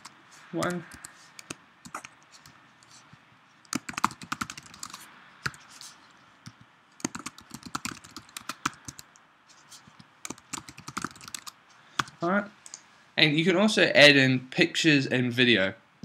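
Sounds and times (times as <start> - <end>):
typing on computer keyboard: 0.0 - 2.1, 3.7 - 5.6, 6.4 - 9.2, 10.2 - 12.1.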